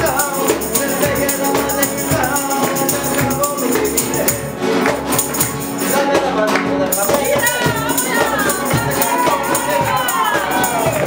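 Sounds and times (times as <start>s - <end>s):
cajon beat: 0.0s - 11.0s
nylon-string guitars strummed: 0.0s - 11.0s.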